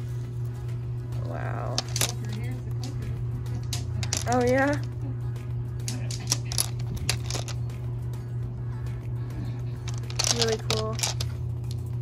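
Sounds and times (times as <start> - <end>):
background music: 0.0 - 12.0
low hum: 0.0 - 12.0
stones clicking together: 1.7 - 4.9, 5.8 - 7.7, 9.8 - 11.9.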